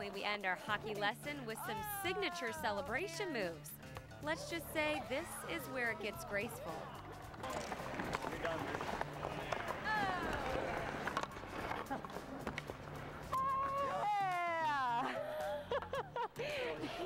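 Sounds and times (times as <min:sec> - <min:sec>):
background music: 0:00.0 - 0:17.0
players shouting and whooping: 0:01.5 - 0:03.6, 0:04.2 - 0:07.4, 0:09.5 - 0:11.2, 0:13.3 - 0:15.7.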